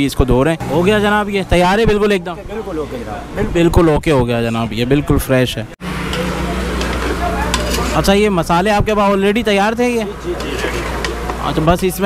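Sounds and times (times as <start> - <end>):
ladle stirring: 6.0 - 8.2.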